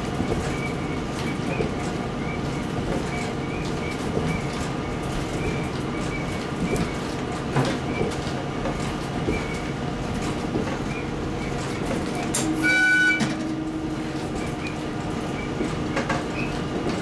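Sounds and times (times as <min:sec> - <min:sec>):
diesel railcar drone: 0:00.0 - 0:17.0
wheels clicking on rails: 0:00.0 - 0:17.0
train horn blast: 0:12.4 - 0:14.0.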